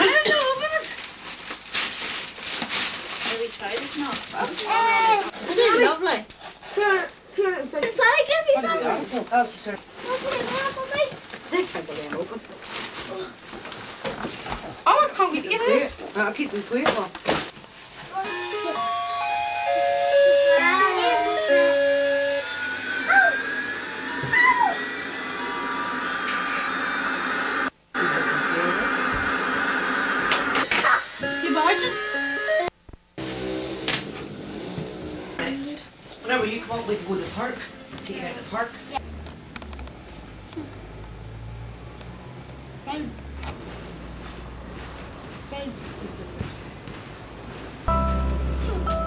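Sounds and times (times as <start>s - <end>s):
young child squealing: 23.0s - 25.0s.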